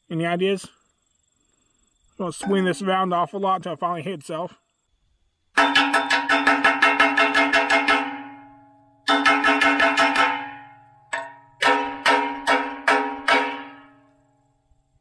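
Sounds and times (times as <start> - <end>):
hammer striking steel: 5.6 - 14.1.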